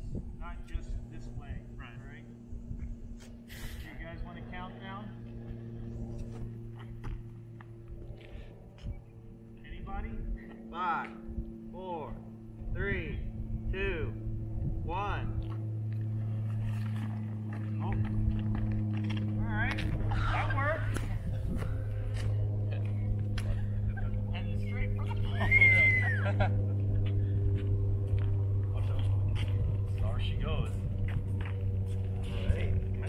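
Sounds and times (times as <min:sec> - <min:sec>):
steady low hum: 0:00.0 - 0:33.0
people calling out and exclaiming: 0:24.0 - 0:26.4
high rising-and-falling call: 0:25.3 - 0:26.4.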